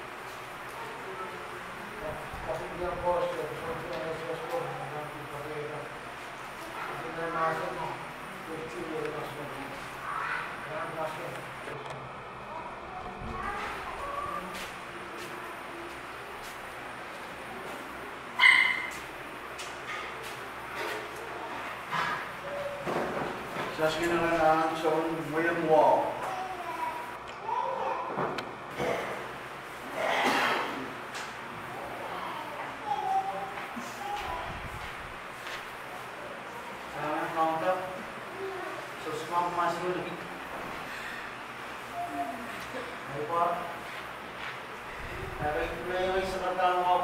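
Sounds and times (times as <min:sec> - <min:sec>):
dog yelping: 0:18.4 - 0:19.0.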